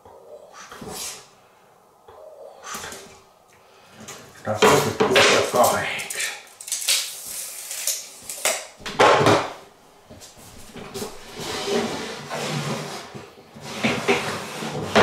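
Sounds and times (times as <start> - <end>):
wooden boards knocking: 8.8 - 9.6.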